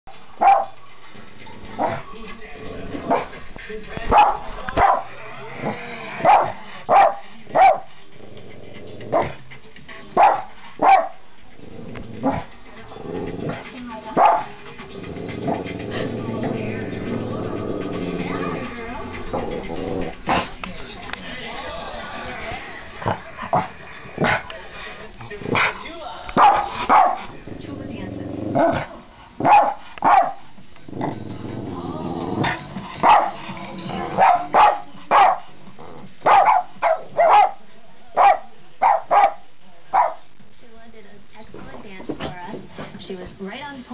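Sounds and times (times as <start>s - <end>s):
dog growling: 1.2s - 10.8s, 11.4s - 20.8s, 21.9s - 37.6s
dog barking sharply: 36.3s - 37.6s, 38.2s - 39.4s.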